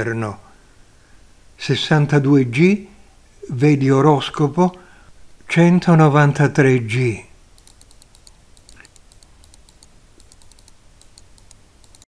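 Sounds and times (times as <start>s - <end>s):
low steady hum: 0.0s - 12.0s
faint light clicks: 7.6s - 12.0s.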